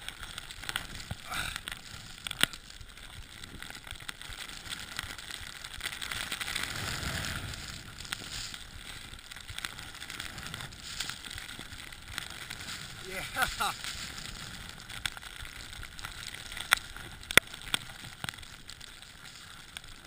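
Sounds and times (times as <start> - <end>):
crackling rustle: 0.0 - 20.0.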